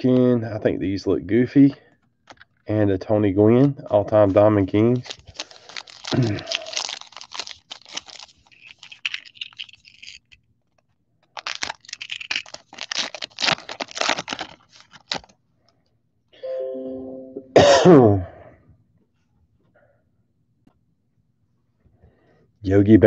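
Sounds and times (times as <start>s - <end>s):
foil wrapper crinkling: 4.3s - 15.4s
person coughing: 6.1s - 6.7s, 17.5s - 18.5s.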